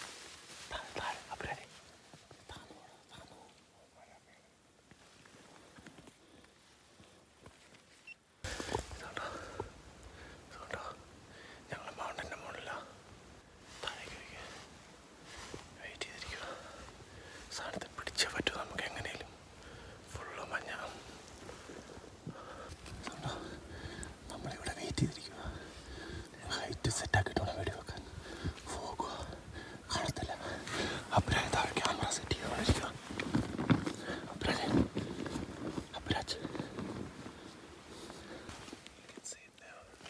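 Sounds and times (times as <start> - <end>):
men whispering: 0.6 - 4.7, 8.5 - 40.0.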